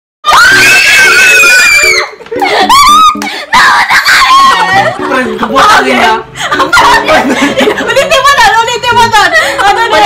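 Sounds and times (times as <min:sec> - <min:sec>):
women screaming: 0:00.2 - 0:05.0.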